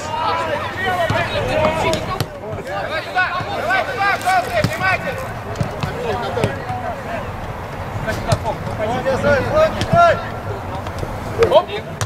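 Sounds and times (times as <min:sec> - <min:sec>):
people shouting: 0:00.0 - 0:07.4.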